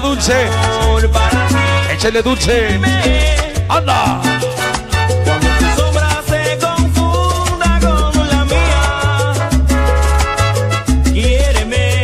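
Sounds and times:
loud salsa music: 0:00.0 - 0:12.0.

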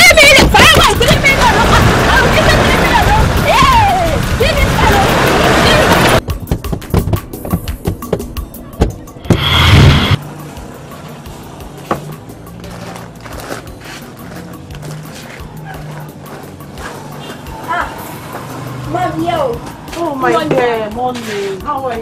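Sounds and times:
film music with low bass tone: 0:05.2 - 0:20.1
loud burst of noise: 0:09.3 - 0:10.2.

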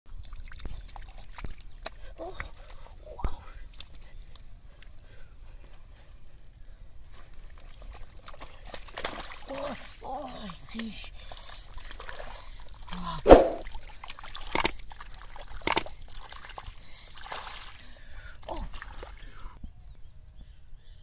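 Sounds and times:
mud splashing and squelching: 0:00.1 - 0:03.0, 0:07.0 - 0:19.6.

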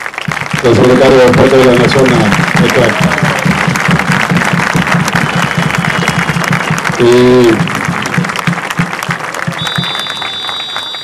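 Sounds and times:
crowd applauding: 0:00.0 - 0:11.0
fast low beat: 0:00.3 - 0:10.0.

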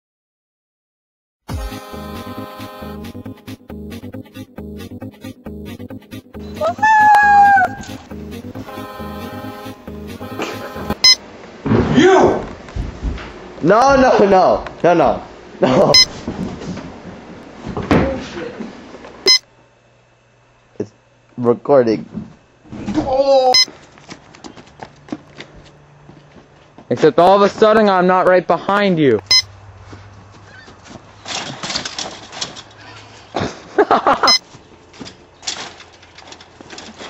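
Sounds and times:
faint electrical hum: 0:07.7 - 0:37.0
scuffs and knocks on chain-link fence: 0:30.3 - 0:33.2, 0:34.8 - 0:37.0.

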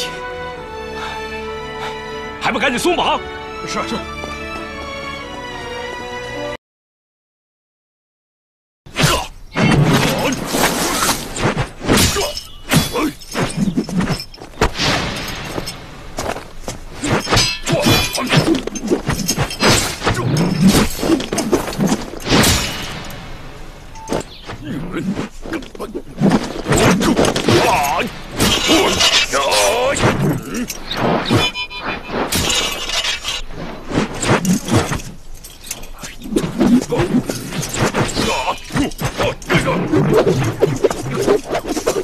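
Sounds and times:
blade scraping leaves and dirt: 0:09.7 - 0:42.0
metallic jangle: 0:12.2 - 0:14.5, 0:17.0 - 0:23.3, 0:27.2 - 0:33.4, 0:34.2 - 0:42.0
sharp hits: 0:14.6 - 0:24.6
metal weapon whooshing: 0:16.9 - 0:24.4.

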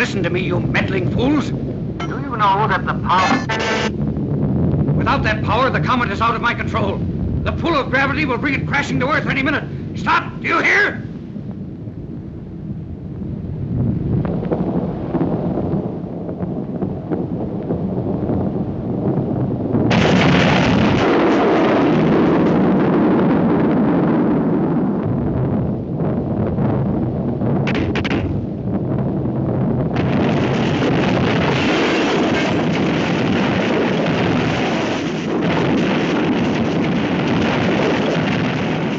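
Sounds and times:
crackling rush with explosions: 0:00.0 - 0:38.9
low rumble: 0:00.0 - 0:38.9.

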